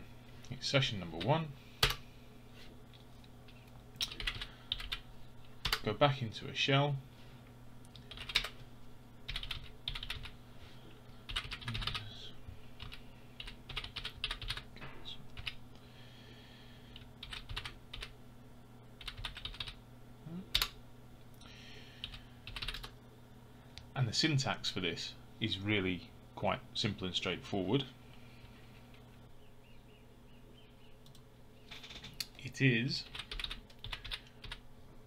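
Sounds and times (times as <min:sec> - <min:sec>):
low steady hum: 0:00.0 - 0:35.0
computer keyboard typing: 0:04.0 - 0:05.0, 0:08.0 - 0:08.6, 0:09.3 - 0:10.3, 0:11.3 - 0:12.1, 0:12.8 - 0:14.7, 0:15.4 - 0:15.6, 0:17.0 - 0:18.1, 0:19.0 - 0:19.8, 0:22.0 - 0:22.9, 0:33.0 - 0:34.6.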